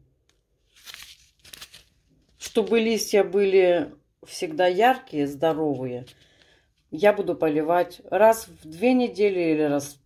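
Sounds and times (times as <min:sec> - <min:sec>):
plastic sachet crinkling: 0:00.4 - 0:03.1.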